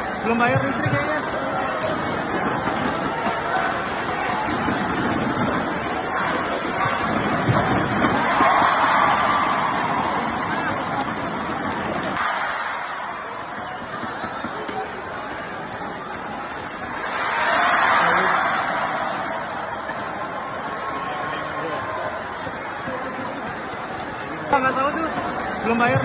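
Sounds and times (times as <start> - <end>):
crowd chattering indoors: 0.0 - 26.0.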